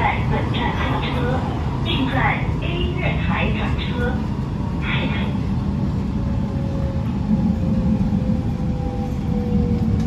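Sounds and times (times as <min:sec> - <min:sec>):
metro train running rumble: 0:00.0 - 0:10.0.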